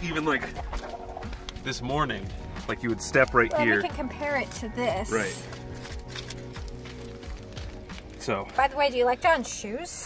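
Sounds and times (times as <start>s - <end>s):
background music with sustained tones: 0.0s - 10.0s.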